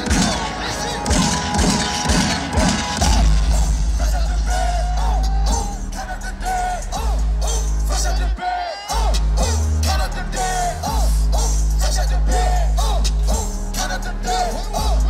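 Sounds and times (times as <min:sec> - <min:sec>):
heavy bass line: 0:00.0 - 0:15.0
loud hip-hop music: 0:00.0 - 0:15.0
voices over beat: 0:00.0 - 0:15.0.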